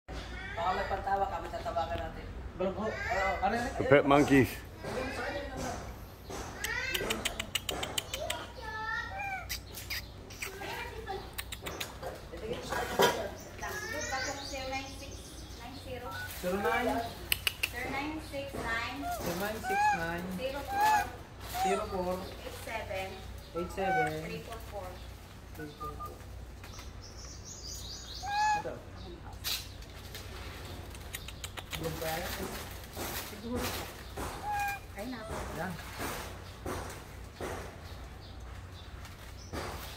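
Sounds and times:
sharp clicks: 0:11.3 - 0:12.0, 0:17.3 - 0:17.9
monkey meow-like call: 0:19.0 - 0:22.0, 0:28.2 - 0:28.7, 0:34.4 - 0:35.3.

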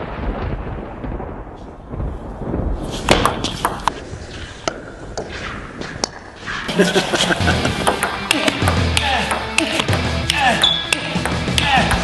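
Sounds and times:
deep rumbling boom: 0:00.0 - 0:03.4.

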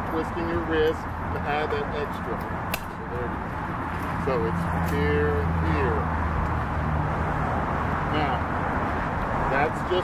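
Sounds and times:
outdoor traffic noise: 0:00.0 - 0:10.0.

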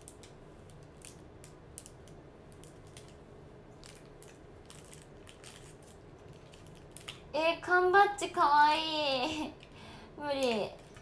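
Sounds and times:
gift wrapping crinkling: 0:03.8 - 0:07.3.

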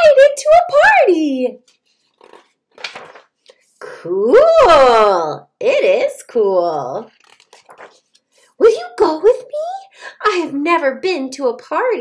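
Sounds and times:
book page turning: 0:01.6 - 0:03.7, 0:07.0 - 0:08.4.

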